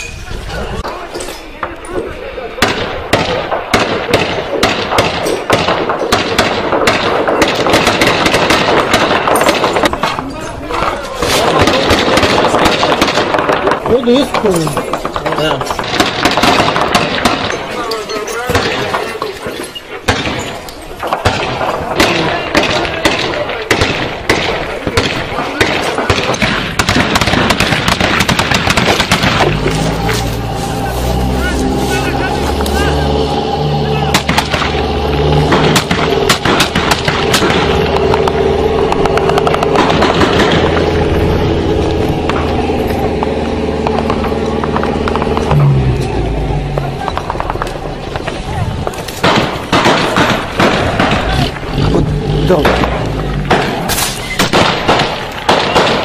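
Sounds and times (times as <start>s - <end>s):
voices: 0.0s - 56.0s
gunfire shots and bursts: 2.6s - 10.3s, 11.2s - 30.2s, 34.1s - 41.0s, 47.2s - 56.0s.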